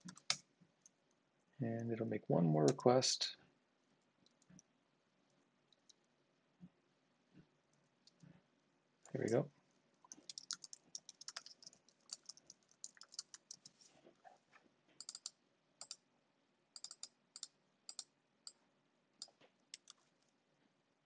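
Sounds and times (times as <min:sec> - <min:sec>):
keyboard typing clicks: 0:00.0 - 0:00.4, 0:10.1 - 0:13.7, 0:15.0 - 0:16.0, 0:16.8 - 0:18.6, 0:19.2 - 0:20.0.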